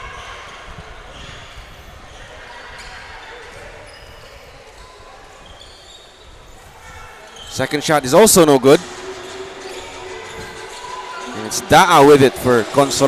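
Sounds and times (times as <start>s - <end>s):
crowd chatter echoing: 0.0s - 13.0s.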